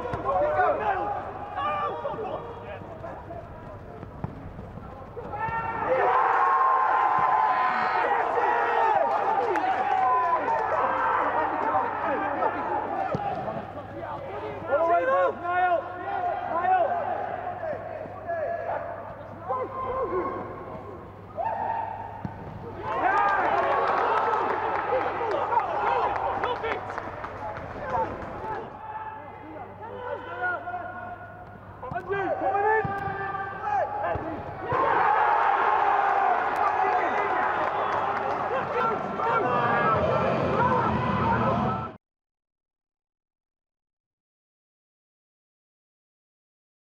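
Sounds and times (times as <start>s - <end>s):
players shouting: 0.0s - 20.6s, 21.3s - 27.2s, 27.8s - 42.0s.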